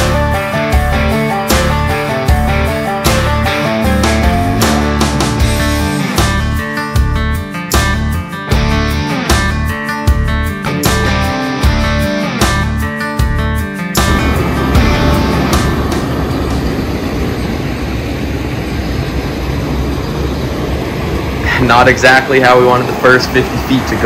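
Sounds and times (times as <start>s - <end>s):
combine harvester engine running: 0.0s - 6.7s, 14.0s - 24.0s
rock music with strummed guitar: 0.0s - 16.5s.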